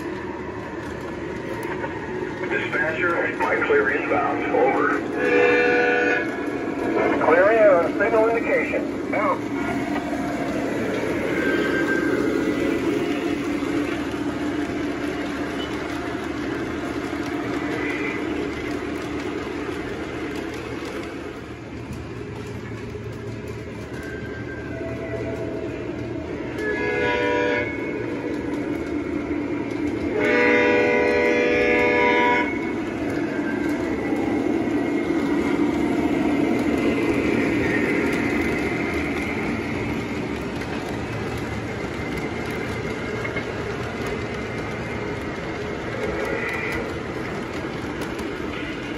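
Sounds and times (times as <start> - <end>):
model train rumbling on track: 0.0 - 48.9
train horn: 5.2 - 6.4, 26.5 - 28.0, 30.1 - 32.7.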